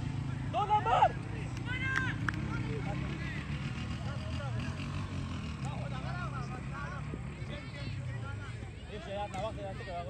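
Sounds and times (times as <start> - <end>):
distant indistinct voices: 0.0 - 10.0.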